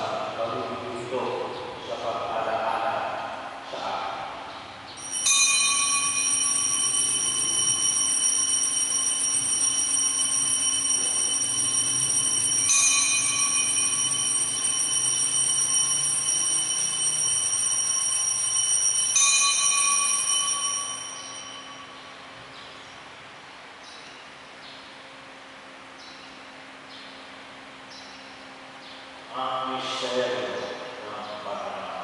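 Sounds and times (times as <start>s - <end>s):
altar bells ringing: 5.0s - 22.8s.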